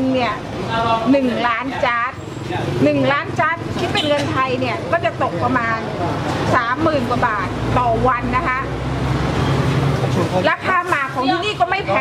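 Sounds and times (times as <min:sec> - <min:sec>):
woman speaking: 0:00.0 - 0:02.2, 0:02.8 - 0:08.8, 0:10.4 - 0:12.0.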